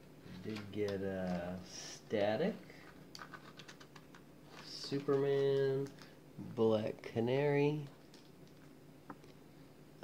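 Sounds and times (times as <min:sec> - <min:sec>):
cards shuffling clicks: 0:00.3 - 0:01.6, 0:02.8 - 0:06.1.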